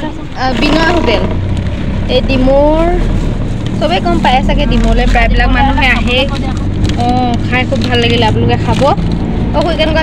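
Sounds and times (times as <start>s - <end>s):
engine and road rumble: 0.0s - 10.0s.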